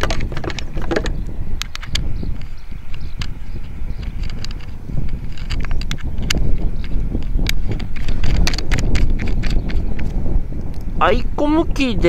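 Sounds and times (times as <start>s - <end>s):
antenna connector clicking: 0.0s - 10.9s
wind rumbling on microphone: 0.0s - 12.0s.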